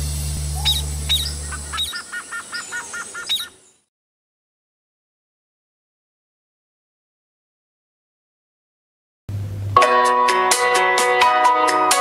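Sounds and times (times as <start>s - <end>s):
bird chirping: 0.5s - 3.9s.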